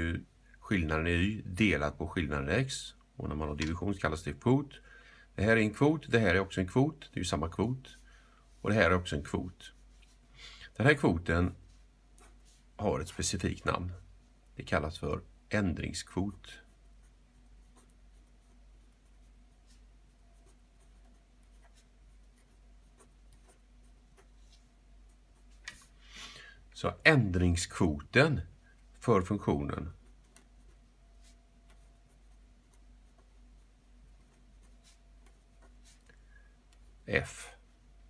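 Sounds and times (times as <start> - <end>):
low steady hum: 0.0 - 38.0
pen scratching on paper: 11.7 - 12.7, 16.4 - 25.6, 29.8 - 36.1.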